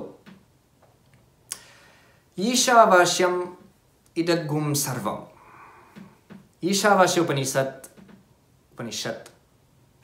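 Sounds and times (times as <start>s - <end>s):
soft breath in: 1.6s - 2.3s, 5.3s - 6.2s.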